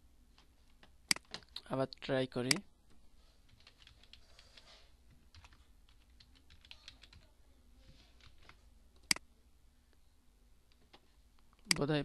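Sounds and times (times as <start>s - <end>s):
computer keyboard keystrokes: 1.1s - 1.4s, 5.3s - 7.2s.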